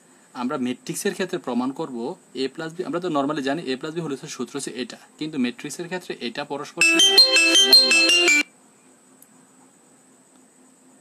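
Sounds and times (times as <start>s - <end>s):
short electronic melody: 6.8s - 8.5s.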